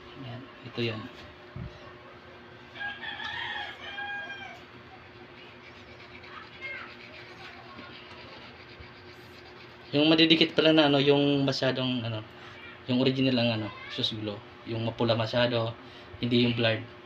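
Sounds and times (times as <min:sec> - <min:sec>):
faint background hum: 0:00.0 - 0:17.0.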